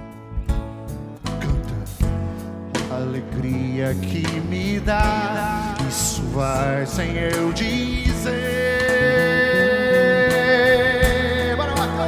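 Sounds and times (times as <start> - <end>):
acoustic guitar: 0.0 - 12.0
bass: 0.0 - 12.0.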